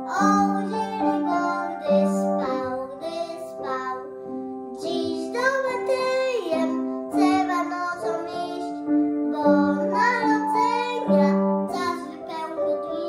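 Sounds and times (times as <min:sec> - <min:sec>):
boy singing: 0:00.0 - 0:13.0
piano accompaniment: 0:00.0 - 0:13.0.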